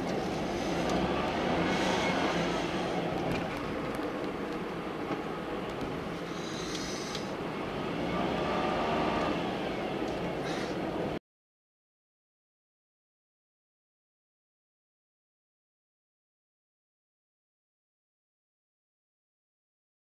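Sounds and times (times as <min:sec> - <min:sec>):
car road and engine noise: 0:00.0 - 0:11.2.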